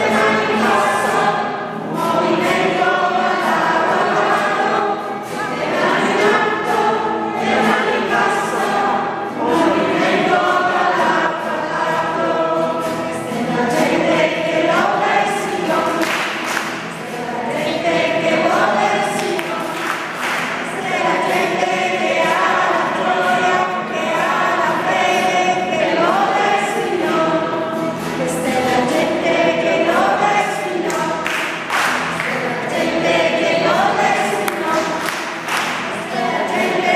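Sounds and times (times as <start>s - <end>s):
congregation singing a hymn: 0.0s - 36.9s.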